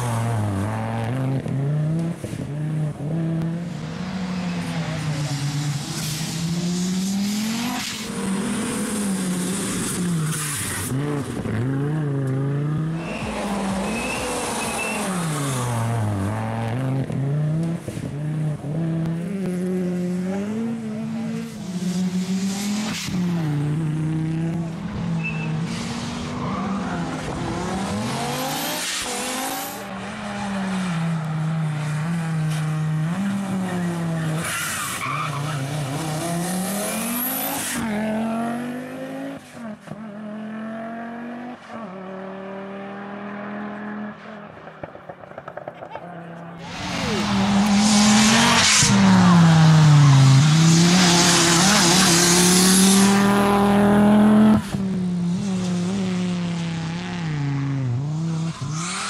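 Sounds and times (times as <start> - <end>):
rally car engine revving: 0.0 - 59.0.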